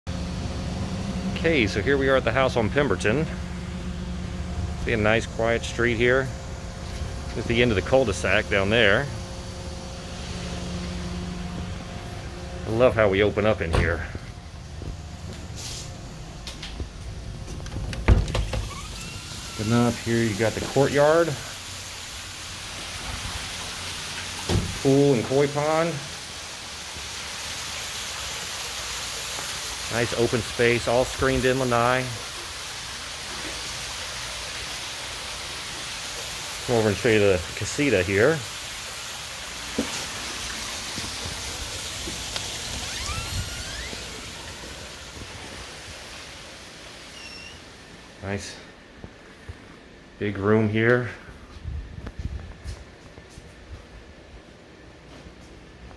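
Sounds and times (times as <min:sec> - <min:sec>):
mechanical hum: 0:00.1 - 0:55.9
soft outdoor hiss: 0:00.1 - 0:55.9
water rushing from waterfall: 0:18.3 - 0:48.0.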